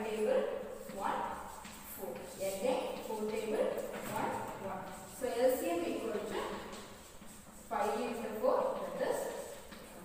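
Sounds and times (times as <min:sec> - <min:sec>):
woman speaking: 0:00.0 - 0:06.8, 0:07.7 - 0:10.0.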